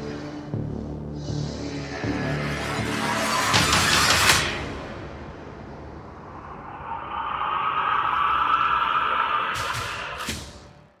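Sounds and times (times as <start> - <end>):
rushing swell of noise: 5.6 - 10.5.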